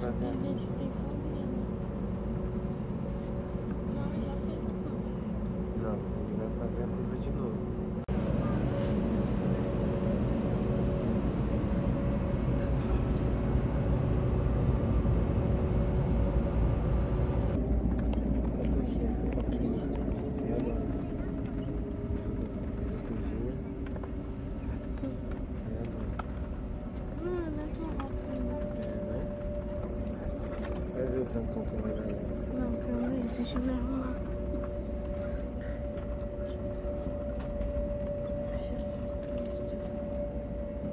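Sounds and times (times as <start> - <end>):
airliner cabin engine rumble: 0.0 - 40.9.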